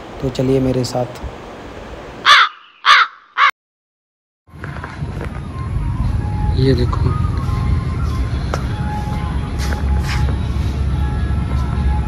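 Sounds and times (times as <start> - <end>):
crow cawing: 2.2 - 3.5.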